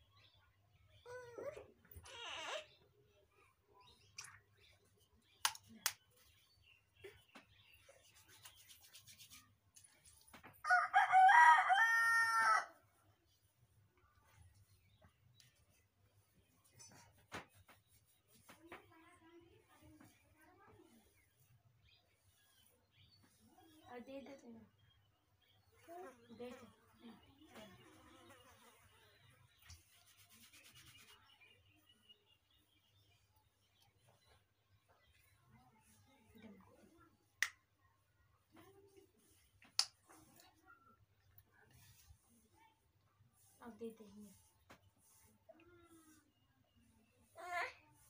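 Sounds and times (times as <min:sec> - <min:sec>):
oiled palms rubbing: 0:07.3 - 0:10.3, 0:16.6 - 0:18.9, 0:29.6 - 0:31.4
comb rubbing through hair: 0:07.9 - 0:10.3, 0:29.7 - 0:31.3, 0:41.7 - 0:46.3
rooster crowing: 0:10.7 - 0:12.8.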